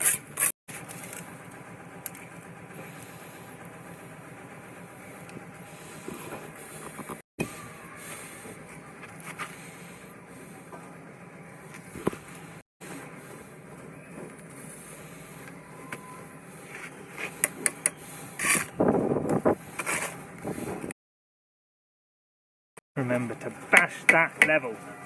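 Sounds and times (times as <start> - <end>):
steel trowel scraping: 0.0 - 1.2, 16.6 - 18.8, 19.6 - 20.3.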